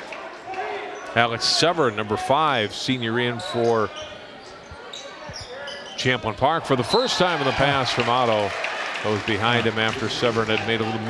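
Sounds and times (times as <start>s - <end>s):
hubbub of crowd: 0.0s - 11.0s.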